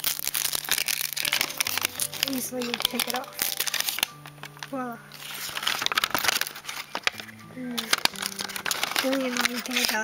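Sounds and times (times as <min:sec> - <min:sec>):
plastic shrink-wrap crinkling and tearing: 0:00.0 - 0:10.0.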